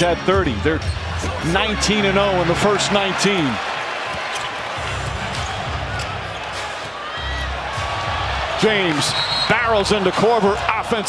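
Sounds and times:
crowd murmur: 0:02.4 - 0:08.6.

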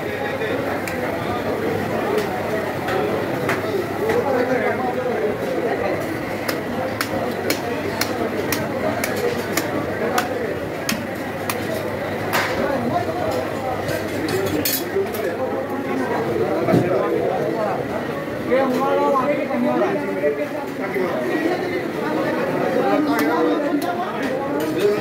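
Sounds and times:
voices chattering: 0:00.0 - 0:25.0.

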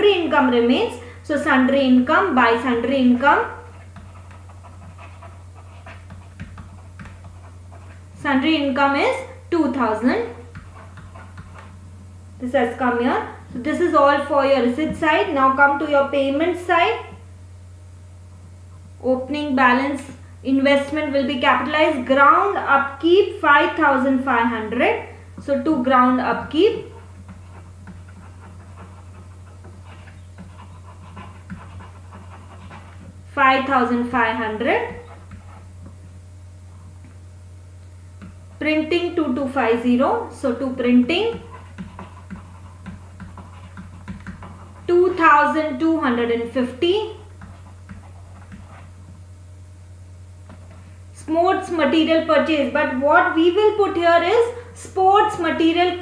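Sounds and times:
electrical hum and hiss: 0:00.0 - 0:56.0
stylus scratching on pen tablet: 0:01.4 - 0:11.8, 0:20.8 - 0:37.1, 0:38.2 - 0:49.2.

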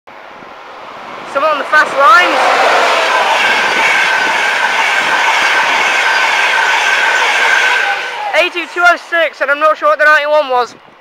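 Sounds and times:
train wheels rushing on rail: 0:00.1 - 0:11.0
high ringing tone: 0:03.0 - 0:08.8.

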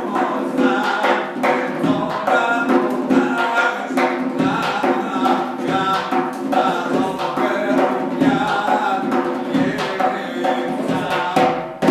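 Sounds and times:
man chanting melodically: 0:00.0 - 0:11.9
goblet drum strikes: 0:10.8 - 0:11.9.

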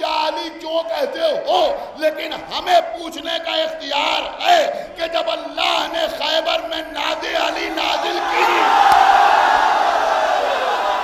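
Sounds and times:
man calling out: 0:00.0 - 0:08.5.

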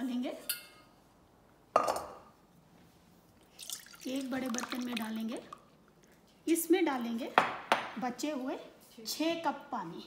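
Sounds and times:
pulp pouring into pan: 0:03.4 - 0:05.7.

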